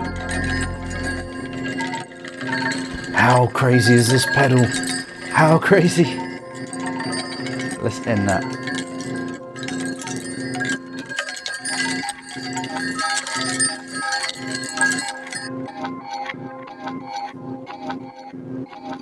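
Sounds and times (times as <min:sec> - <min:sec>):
electronic music loop: 0:00.0 - 0:11.1.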